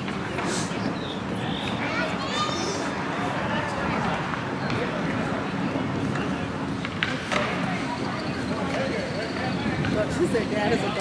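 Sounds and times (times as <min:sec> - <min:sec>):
indistinct voices of passers-by: 0:00.0 - 0:11.0.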